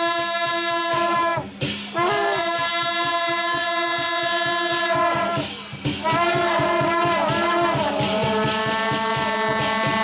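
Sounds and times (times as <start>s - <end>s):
horn holding long note: 0.0s - 1.4s, 2.0s - 10.0s
fast drum beat: 0.0s - 10.0s.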